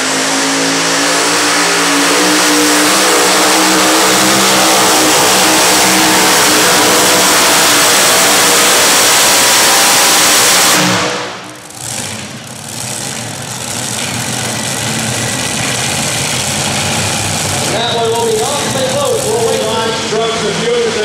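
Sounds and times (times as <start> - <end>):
engine idling: 0.0 - 21.0
supercharged engines at full throttle: 0.0 - 21.0.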